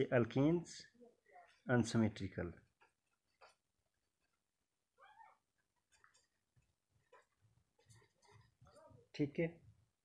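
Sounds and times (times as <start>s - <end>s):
faint animal call: 5.0s - 5.5s.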